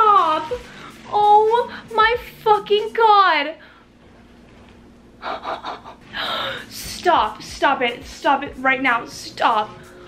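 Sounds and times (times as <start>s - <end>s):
woman gasping: 6.0s - 6.8s.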